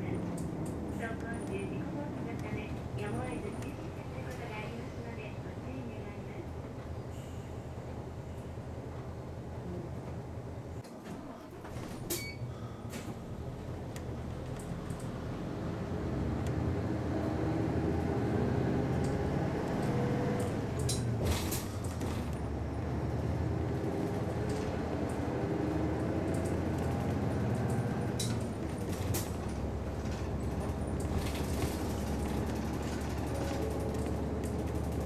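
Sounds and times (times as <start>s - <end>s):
bus diesel engine accelerating: 0.0s - 35.0s
clicks and knocks from bus body: 10.8s - 15.1s, 19.8s - 22.5s, 26.3s - 35.0s.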